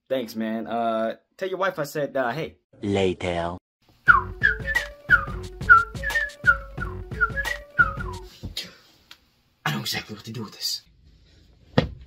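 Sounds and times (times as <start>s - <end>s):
music with steady bass beat: 4.1s - 8.3s
whistling short falling notes: 4.1s - 8.3s.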